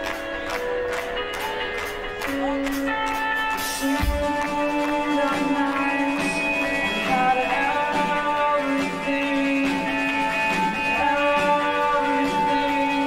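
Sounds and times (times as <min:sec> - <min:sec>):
rock band playing: 0:00.0 - 0:13.0.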